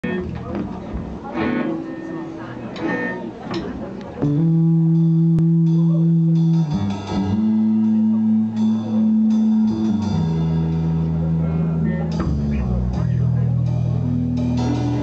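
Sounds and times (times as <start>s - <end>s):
audience chatter: 0.0s - 15.0s
scattered guitar sounds: 0.0s - 15.0s
loud held band notes: 4.2s - 15.0s.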